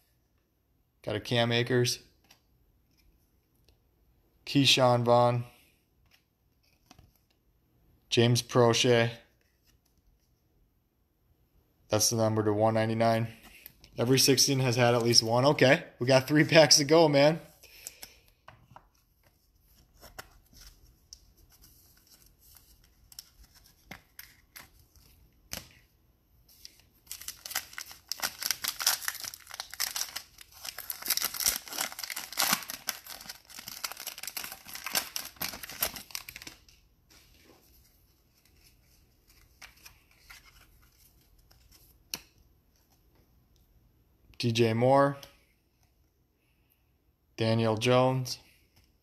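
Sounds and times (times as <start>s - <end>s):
cards being handled: 6.0s - 7.4s, 17.6s - 43.2s
foil wrapper tearing and crinkling: 27.1s - 36.6s.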